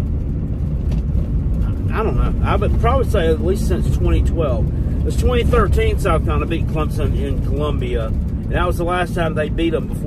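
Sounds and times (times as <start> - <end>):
vehicle engine rumble from cab: 0.0 - 10.0.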